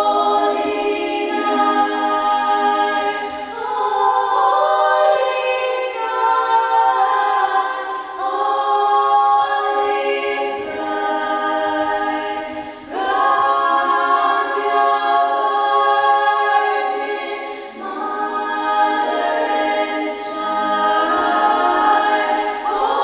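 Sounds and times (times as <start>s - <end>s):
female choir singing a cappella: 0.0s - 23.0s.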